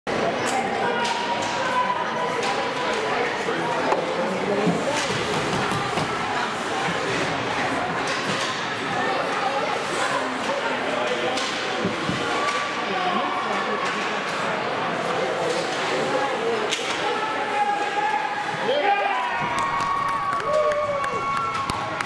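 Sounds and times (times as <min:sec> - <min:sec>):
crowd voices: 0:00.1 - 0:22.0
hockey sticks and puck knocking: 0:03.8 - 0:06.2.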